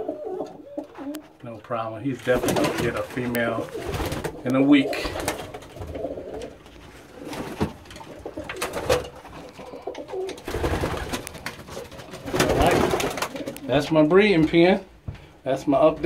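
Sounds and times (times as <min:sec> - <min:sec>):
pigeons cooing: 0:00.0 - 0:01.3, 0:03.6 - 0:13.8
rustling: 0:00.4 - 0:13.8.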